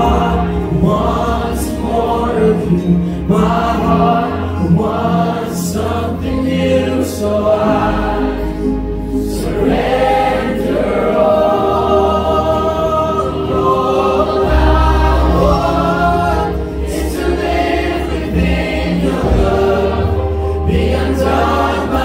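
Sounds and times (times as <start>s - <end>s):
voices singing in harmony: 0.0s - 22.0s.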